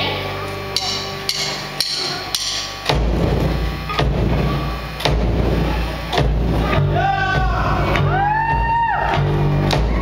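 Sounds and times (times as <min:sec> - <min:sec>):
heavy accented drum hits: 0:00.8 - 0:08.7.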